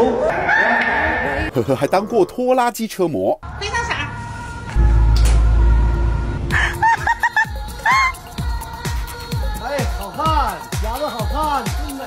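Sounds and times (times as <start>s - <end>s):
heavy low rumble: 4.1s - 7.2s
woman laughing high-pitched: 6.6s - 8.2s.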